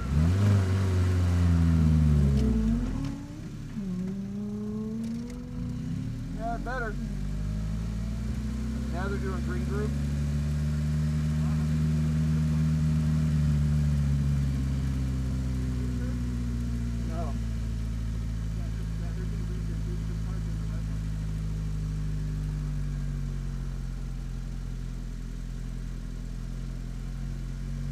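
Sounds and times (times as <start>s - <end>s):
car engine running at low revs: 0.0s - 27.9s.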